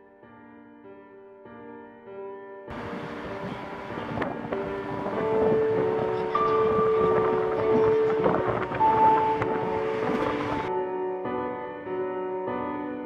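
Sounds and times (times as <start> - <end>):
road traffic: 2.7 - 10.7
wind on microphone: 2.7 - 10.7.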